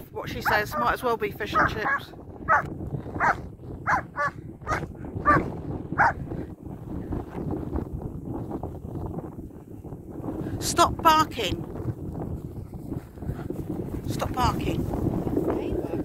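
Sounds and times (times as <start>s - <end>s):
dog barking: 0.4s - 6.2s.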